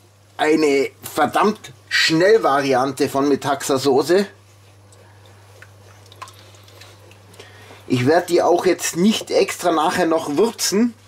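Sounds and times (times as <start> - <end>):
steady low hum: 0.0 - 11.0
sauce sloshing: 4.5 - 7.9.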